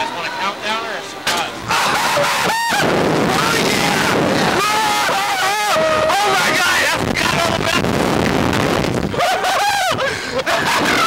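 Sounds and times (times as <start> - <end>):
wind rushing over microphone: 1.6 - 11.0
person screaming: 1.7 - 6.4, 9.1 - 11.0.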